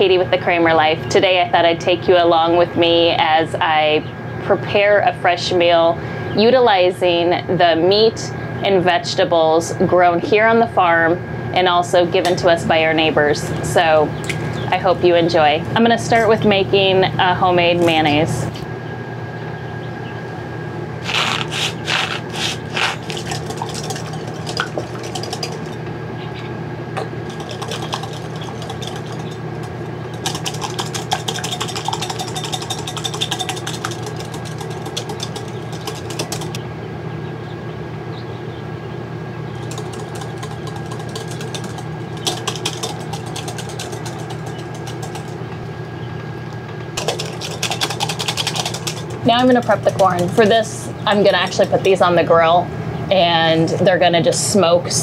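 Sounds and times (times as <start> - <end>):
steady low hum: 0.0 - 55.0
whisk clinking against glass bowl: 21.4 - 25.8, 27.0 - 36.6, 39.6 - 45.4, 47.0 - 50.6.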